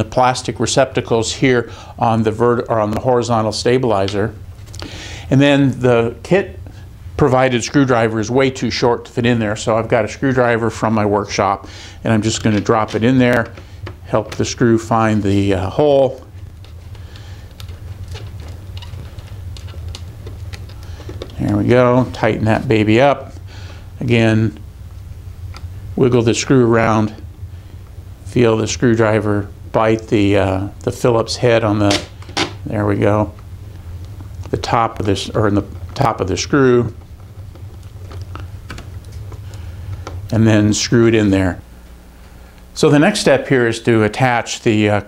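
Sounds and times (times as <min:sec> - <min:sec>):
low hum: 0:00.0 - 0:45.0.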